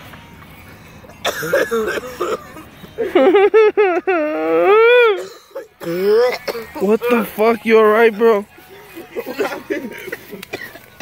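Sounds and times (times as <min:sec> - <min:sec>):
man crying out: 0:04.0 - 0:07.3
man speaking: 0:06.8 - 0:08.5.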